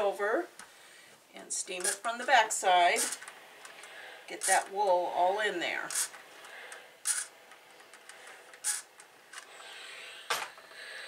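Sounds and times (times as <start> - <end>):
steam iron hissing: 2.6 - 4.6, 8.2 - 11.0.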